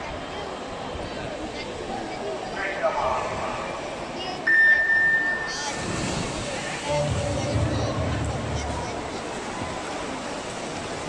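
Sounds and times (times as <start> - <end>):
high electronic beep: 4.5 - 5.6.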